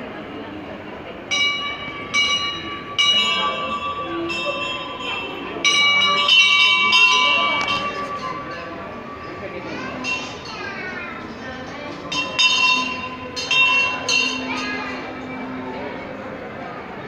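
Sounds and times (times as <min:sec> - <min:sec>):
voices murmuring: 0:00.0 - 0:17.0
brass bell ringing: 0:01.3 - 0:11.3, 0:12.0 - 0:15.9.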